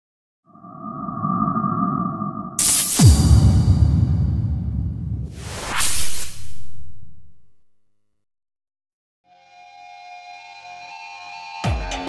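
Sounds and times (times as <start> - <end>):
low rumble: 0.6 - 5.5
bright electronic hit: 2.5 - 5.5
deep boom falling in pitch: 3.0 - 5.4.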